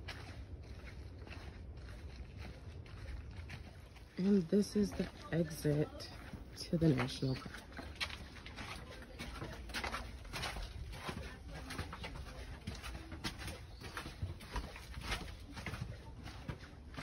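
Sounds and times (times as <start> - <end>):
footsteps on stone path: 0.0 - 17.0.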